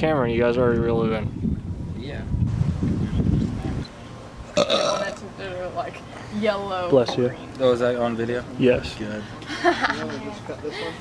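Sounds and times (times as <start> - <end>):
man burping: 4.6 - 5.2.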